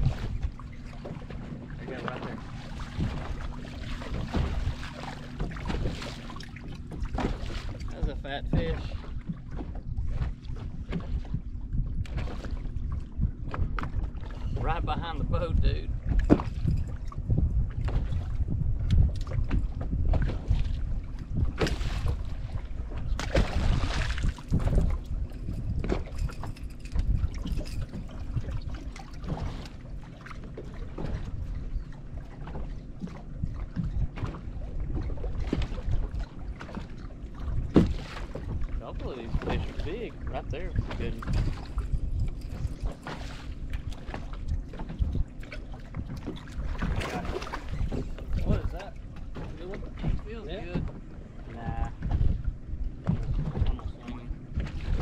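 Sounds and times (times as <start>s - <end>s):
water lapping against boat hull: 0.0s - 55.0s
wind buffeting microphone: 0.0s - 55.0s.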